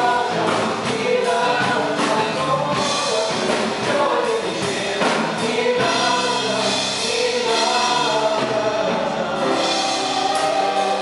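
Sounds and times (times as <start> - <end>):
piano accompaniment: 0.0 - 11.0
women singing in harmony: 0.0 - 11.0.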